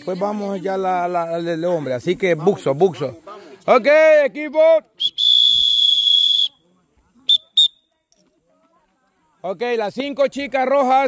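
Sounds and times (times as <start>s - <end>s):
referee's whistle blasts: 5.0s - 6.6s, 7.3s - 7.8s.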